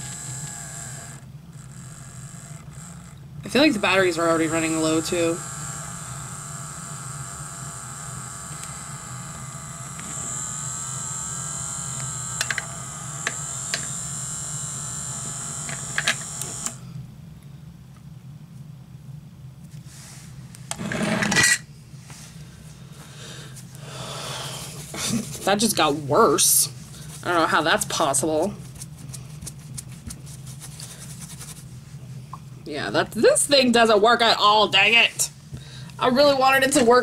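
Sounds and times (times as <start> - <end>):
small cleaning machine whining: 0.0 - 17.0.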